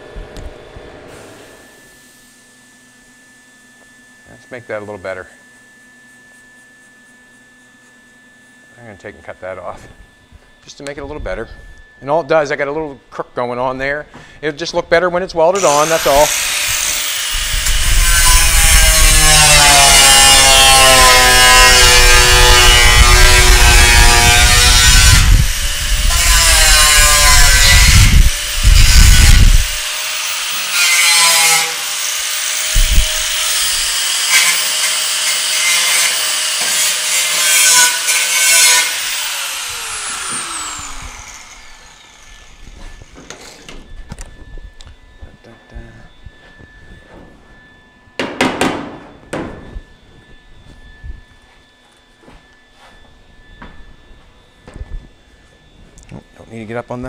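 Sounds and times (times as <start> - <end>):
grinder winding down: 15.5 - 30.8, 31.6 - 43.3
angle grinder cutting sheet metal: 15.5 - 43.7.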